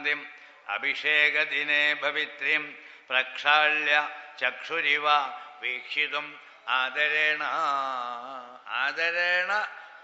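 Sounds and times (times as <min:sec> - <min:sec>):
man chanting melodically: 0:00.0 - 0:09.8.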